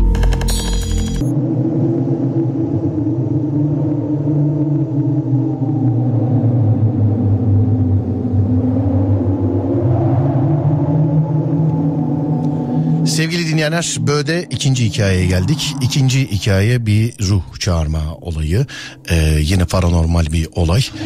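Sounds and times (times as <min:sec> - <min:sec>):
deep ambient drone: 0:00.0 - 0:21.0.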